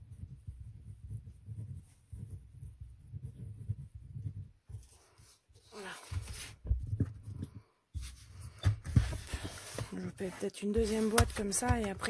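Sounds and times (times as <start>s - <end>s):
paper sliding across a mat: 4.7s - 6.7s, 8.0s - 11.5s
hands moving: 5.8s - 12.0s.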